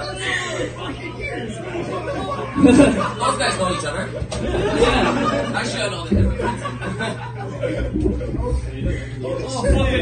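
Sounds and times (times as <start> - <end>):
indistinct chatter: 0.0 - 10.0
low hum: 6.1 - 10.0.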